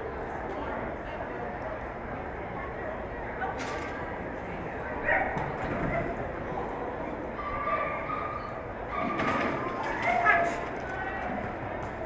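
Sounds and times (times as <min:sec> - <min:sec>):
voices echoing in a hall: 0:00.0 - 0:12.0.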